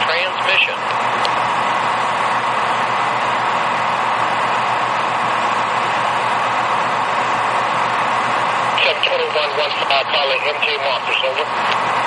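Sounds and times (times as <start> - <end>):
radio scanner static hiss: 8.8 - 11.7.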